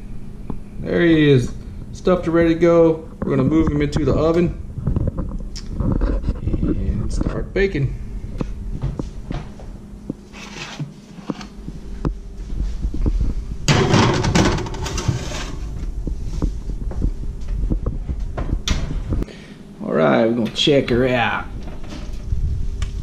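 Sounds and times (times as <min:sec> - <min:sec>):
metal pan rattling on oven rack: 0:13.7 - 0:15.6
oven door shutting: 0:13.7 - 0:15.7.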